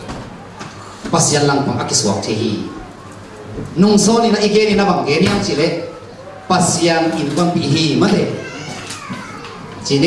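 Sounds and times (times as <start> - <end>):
faint children's voices: 0.0 - 4.8, 5.4 - 10.0
man's amplified speech: 1.1 - 2.8, 3.8 - 8.6.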